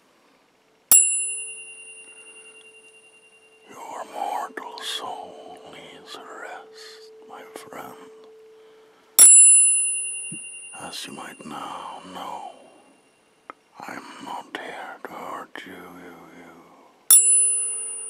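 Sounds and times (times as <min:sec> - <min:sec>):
tuning fork ringing: 0:00.9 - 0:13.5, 0:17.1 - 0:18.0.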